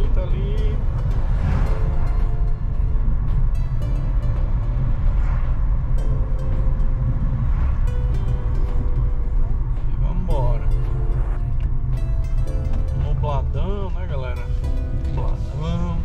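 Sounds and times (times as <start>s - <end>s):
car engine and tyres rumbling: 0.0s - 16.0s
faint music tones: 0.0s - 16.0s.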